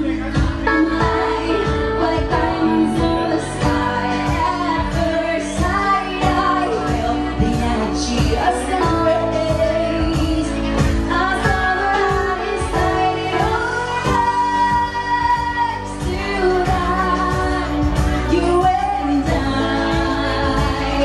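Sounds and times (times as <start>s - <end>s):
woman singing into a microphone: 0.0s - 21.0s.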